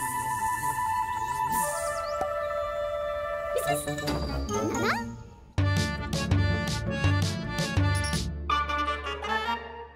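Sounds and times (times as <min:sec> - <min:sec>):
rising whistle glide: 0:00.0 - 0:02.9
music with steady beat: 0:05.6 - 0:08.3.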